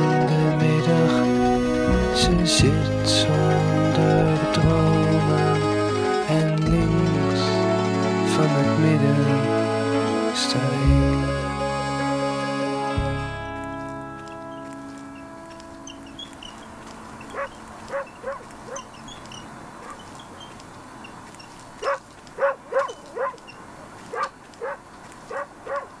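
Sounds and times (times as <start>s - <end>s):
soft music: 0.0s - 19.4s
dog barking in short yaps: 21.8s - 23.4s.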